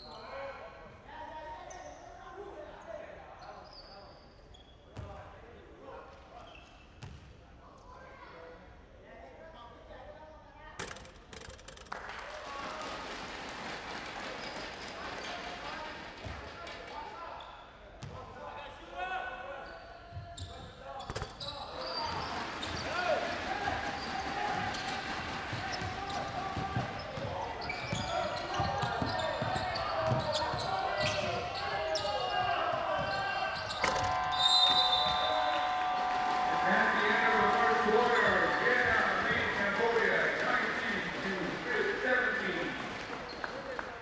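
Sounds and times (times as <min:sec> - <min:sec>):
crowd shouting and cheering: 0:21.8 - 0:44.0.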